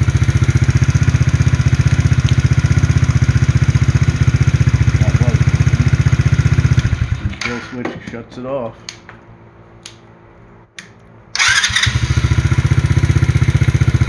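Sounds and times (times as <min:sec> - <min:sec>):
quad engine idling: 0:00.0 - 0:07.6, 0:11.4 - 0:14.0.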